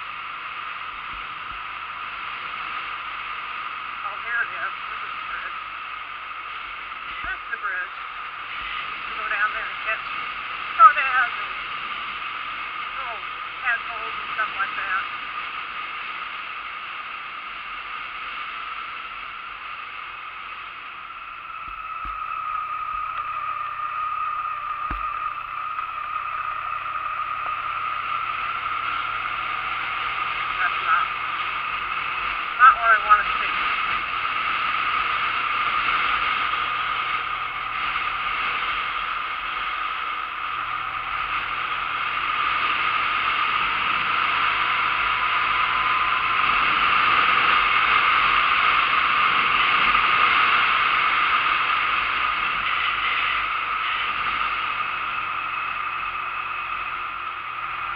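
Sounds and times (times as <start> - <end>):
motorcycle engine running: 0.0 - 57.9
wind noise on microphone: 21.3 - 55.2.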